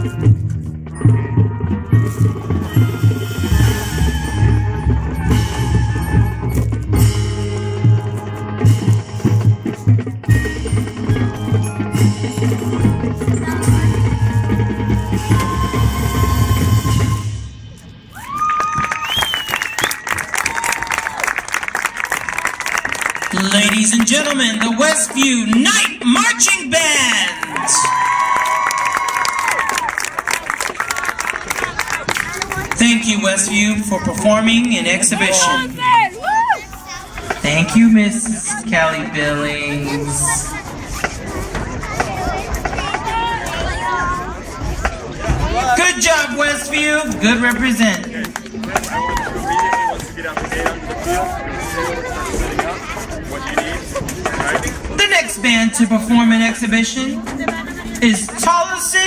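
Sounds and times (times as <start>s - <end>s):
marching band chord: 0.0s - 18.1s
chatter of spectators: 0.0s - 59.0s
audience cheering: 13.7s - 17.2s, 18.1s - 24.2s, 27.0s - 32.8s, 48.3s - 50.2s
audience applause: 18.2s - 26.1s, 27.1s - 32.8s.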